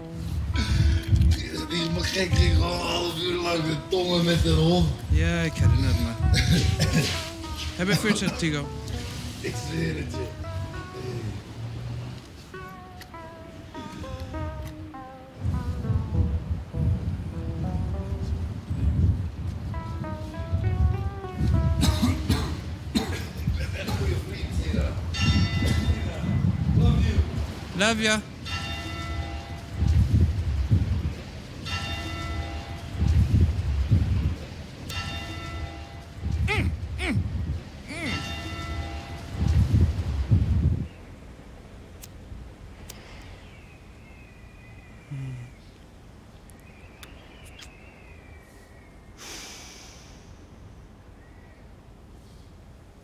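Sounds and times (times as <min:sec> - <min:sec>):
low street noise: 0:00.0 - 0:53.0
bell ringing: 0:25.1 - 0:26.6, 0:28.4 - 0:30.0, 0:31.6 - 0:33.4, 0:34.9 - 0:36.3, 0:38.0 - 0:39.6
person exhaling smoke: 0:45.1 - 0:45.8, 0:49.2 - 0:50.5.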